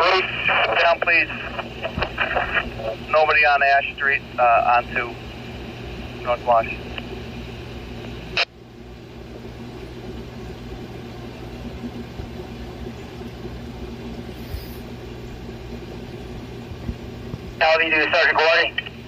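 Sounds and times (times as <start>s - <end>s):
radio squelch burst: 0.0s - 5.2s, 17.6s - 19.0s
steady low hum: 0.0s - 19.0s.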